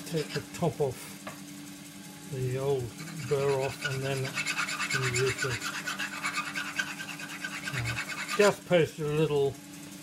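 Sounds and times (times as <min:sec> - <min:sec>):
hone rasping on scraper edge: 0:00.0 - 0:00.6, 0:02.7 - 0:08.6.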